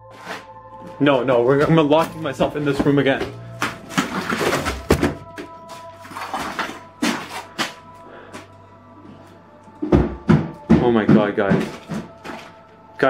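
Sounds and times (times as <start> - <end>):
loud thumps: 9.8 - 12.2.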